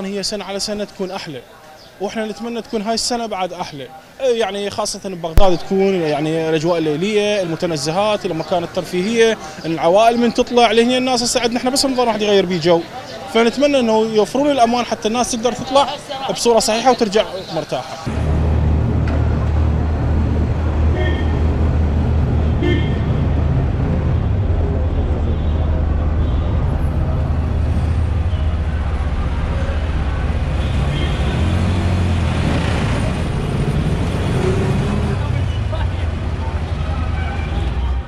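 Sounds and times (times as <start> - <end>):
traffic engines rumbling: 0.0 - 38.0
voices of passersby: 0.0 - 38.0.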